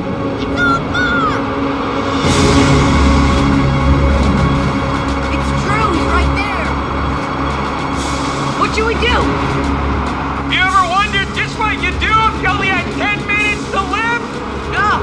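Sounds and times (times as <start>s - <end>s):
dramatic music: 0.0s - 15.0s
tornado wind rumble: 0.0s - 15.0s
person shouting: 0.4s - 1.5s.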